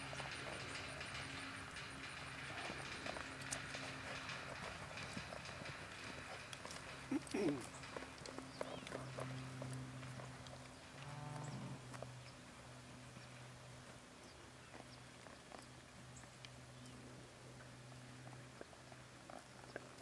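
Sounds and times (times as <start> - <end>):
hoofbeats on dirt: 0.0 - 20.0
steady low hum: 0.0 - 20.0.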